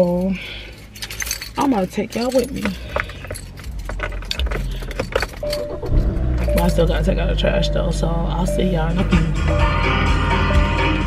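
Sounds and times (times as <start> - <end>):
light clinks and rattles: 0.0 - 7.1
low rumble: 4.3 - 9.2.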